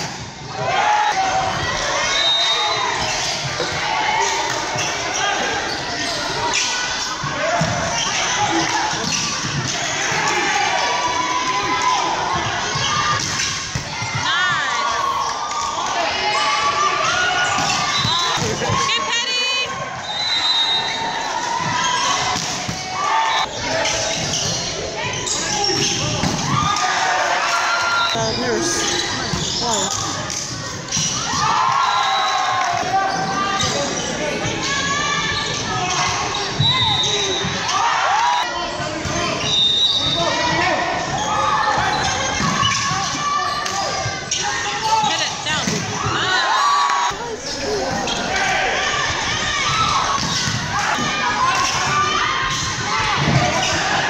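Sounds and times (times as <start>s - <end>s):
players shouting: 0.4s - 54.0s
shoe squeaks on court floor: 23.5s - 26.1s, 28.0s - 30.2s.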